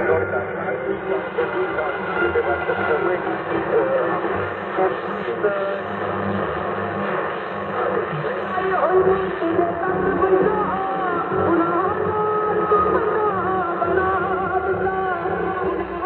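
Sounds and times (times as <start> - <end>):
radio music through small speaker: 0.0 - 16.0
radio reception hiss: 0.0 - 16.0.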